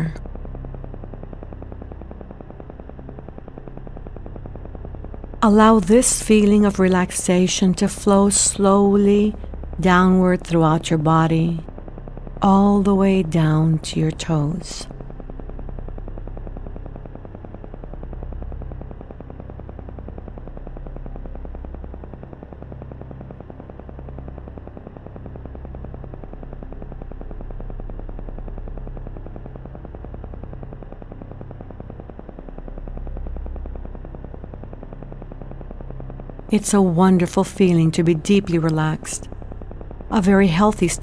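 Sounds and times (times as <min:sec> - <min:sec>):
meditation music drone: 0:00.0 - 0:41.0.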